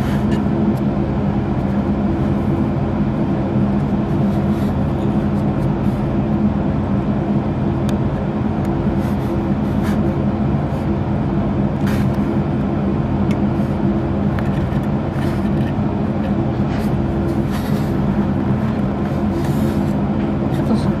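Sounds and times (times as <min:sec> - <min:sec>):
low mechanical hum: 0:00.0 - 0:21.0.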